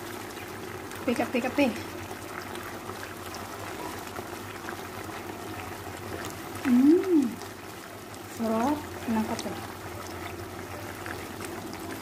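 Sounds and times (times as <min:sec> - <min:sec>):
chicken sizzling in a frying pan: 0:00.0 - 0:12.0
person humming: 0:06.6 - 0:07.4.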